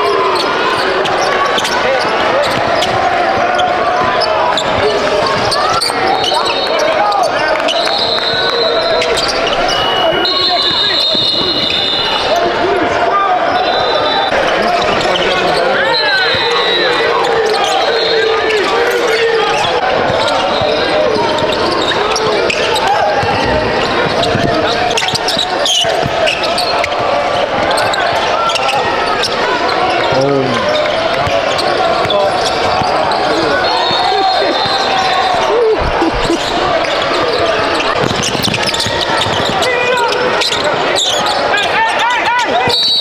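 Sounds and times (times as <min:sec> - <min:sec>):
people talking: 0:00.0 - 0:42.8
sneakers squeaking: 0:00.0 - 0:43.0
basketball bouncing on court: 0:02.4 - 0:06.0, 0:20.0 - 0:28.8, 0:30.6 - 0:35.1, 0:35.8 - 0:40.7.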